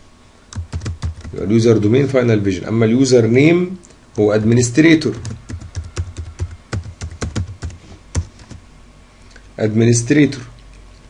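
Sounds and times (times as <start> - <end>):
typing on computer keyboard: 0.5 - 1.4, 5.1 - 8.6.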